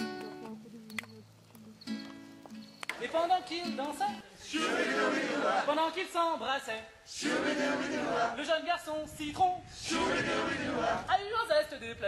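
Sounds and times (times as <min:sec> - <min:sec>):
acoustic guitar strumming: 0:00.0 - 0:00.6, 0:01.8 - 0:04.2.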